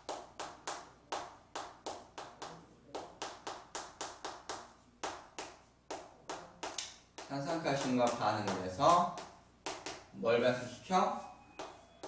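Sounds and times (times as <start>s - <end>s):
chalk tapping on chalkboard: 0.0s - 10.1s, 11.6s - 11.9s.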